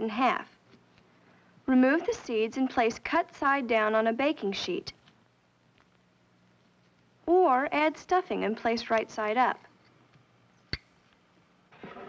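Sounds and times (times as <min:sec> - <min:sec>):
film soundtrack hiss: 0:00.0 - 0:12.0.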